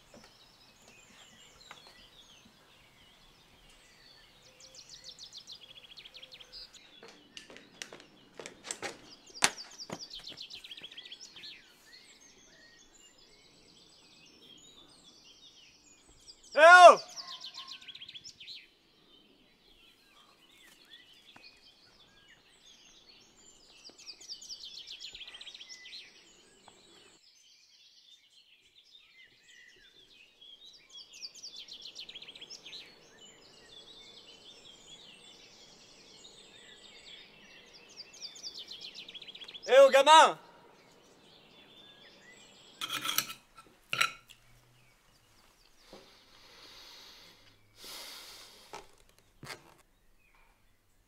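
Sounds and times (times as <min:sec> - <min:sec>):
songbirds chirping: 0:00.0 - 0:51.0
loud voiced cry: 0:16.6 - 0:17.4, 0:39.7 - 0:40.5.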